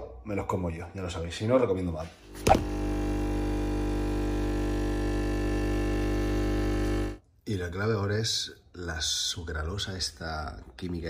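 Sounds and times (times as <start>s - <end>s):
espresso machine pump buzzing: 2.3s - 7.2s.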